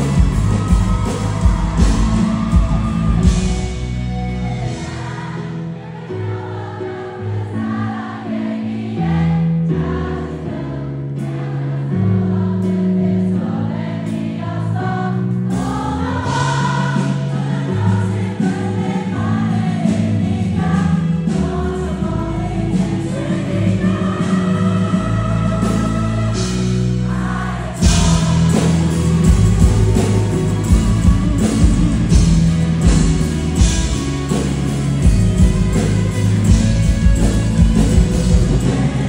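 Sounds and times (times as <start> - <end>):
acoustic guitar: 0.0 - 6.4, 15.3 - 39.0
drums: 0.0 - 6.7, 14.1 - 39.0
crowd singing along: 0.0 - 39.0.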